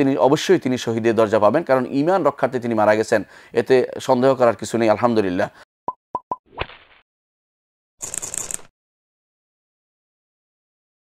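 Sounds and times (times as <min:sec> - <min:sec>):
brief swish: 0:06.5 - 0:07.0.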